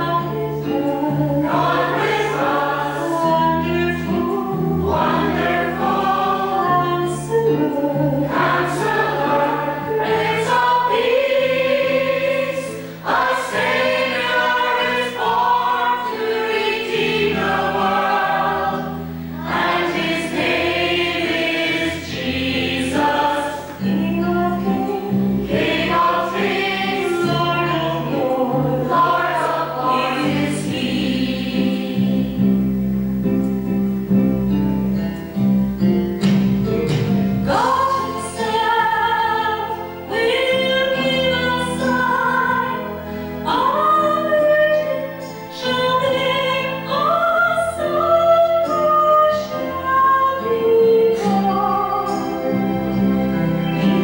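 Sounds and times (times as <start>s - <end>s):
church choir singing: 0.0s - 32.9s, 37.4s - 54.0s.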